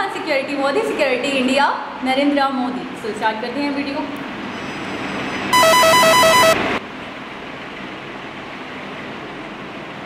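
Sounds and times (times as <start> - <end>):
rapid pulsing electronic beep: 5.6 - 6.8.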